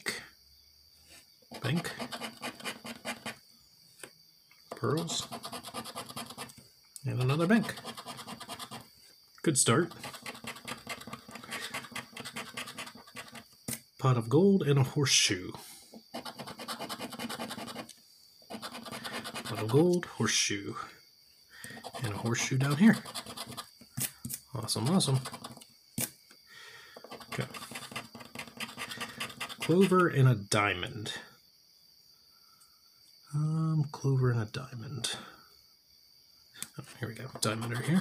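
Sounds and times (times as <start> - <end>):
scratcher disc scraping ticket: 1.6 - 3.4, 9.8 - 13.4, 18.5 - 19.9, 21.8 - 25.6, 27.0 - 30.0, 37.4 - 38.0.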